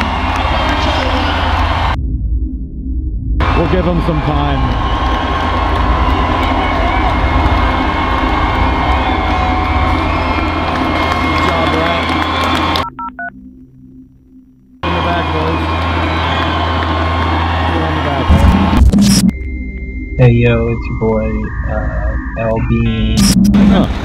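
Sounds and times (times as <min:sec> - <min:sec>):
crowd noise: 0:00.0 - 0:02.0, 0:03.4 - 0:12.8, 0:14.8 - 0:19.3.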